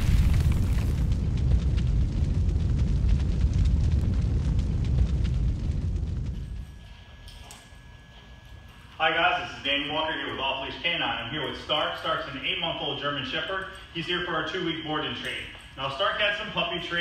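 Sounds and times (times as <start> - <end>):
deep rumbling boom with crackles: 0.0 - 6.8.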